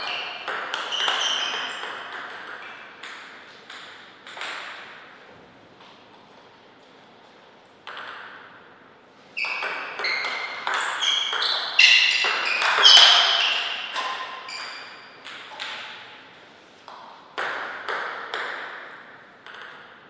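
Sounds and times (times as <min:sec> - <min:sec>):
ball bouncing: 0:00.0 - 0:05.0, 0:07.8 - 0:08.5, 0:09.4 - 0:16.1, 0:16.9 - 0:20.0
table tennis ball hitting paddles: 0:00.0 - 0:05.1, 0:05.8 - 0:08.6, 0:09.4 - 0:16.2, 0:16.8 - 0:20.0.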